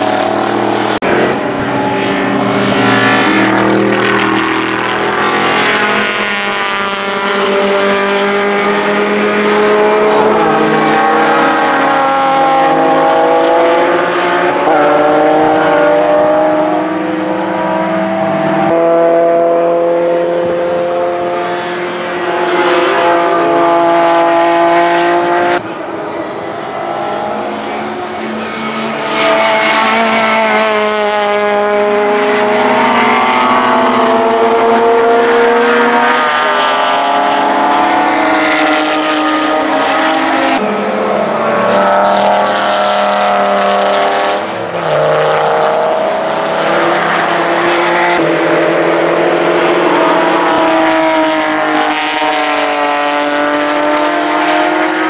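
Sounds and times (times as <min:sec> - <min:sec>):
racing car engines at high revs: 0:00.0 - 0:55.0.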